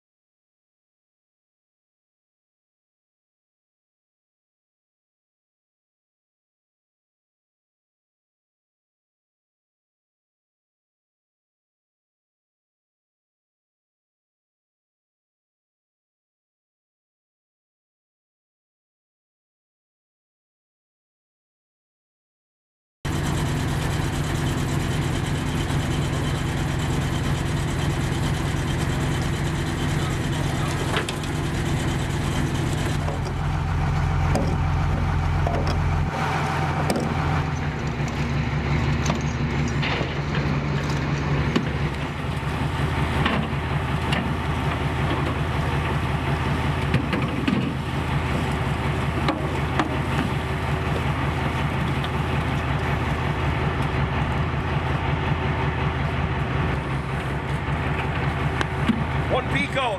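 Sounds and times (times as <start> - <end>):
boat engine running: 23.1 - 59.9.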